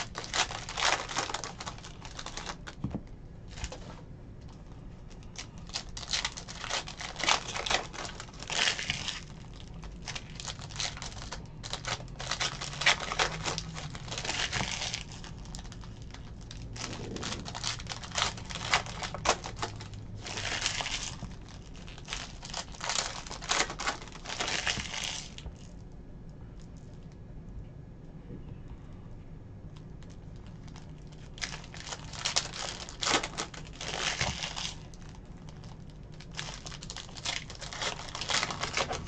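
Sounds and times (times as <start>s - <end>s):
wrappers crinkling and tearing: 0.0s - 2.9s, 3.5s - 25.8s, 30.0s - 39.0s.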